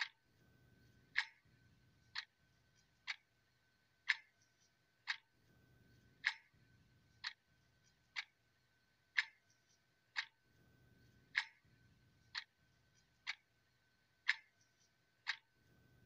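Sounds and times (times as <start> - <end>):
clock ticking: 0.0 - 16.0.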